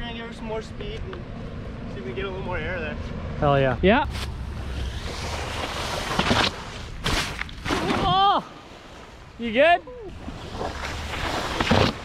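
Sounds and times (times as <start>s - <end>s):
water rushing off a wakeboard: 4.8s - 9.5s, 10.1s - 12.0s.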